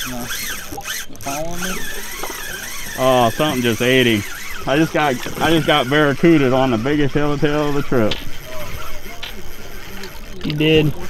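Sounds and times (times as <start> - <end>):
fishing reel drag whining: 0.0 - 11.0.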